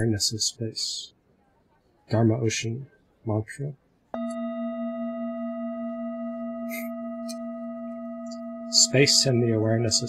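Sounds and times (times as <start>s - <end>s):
singing bowl ringing: 4.2s - 10.0s.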